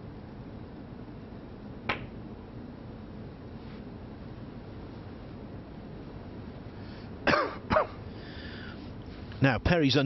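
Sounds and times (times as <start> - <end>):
person coughing: 7.2 - 8.0.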